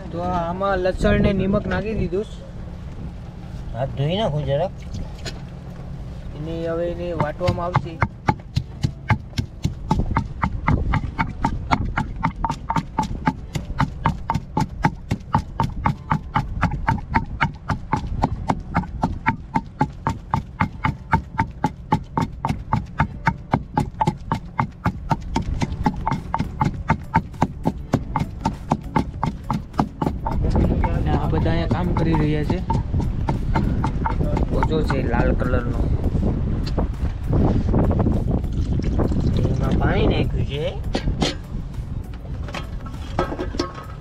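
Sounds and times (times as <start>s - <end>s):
low background rumble: 0.0s - 44.0s
pestle pounding in stone mortar: 7.0s - 39.8s.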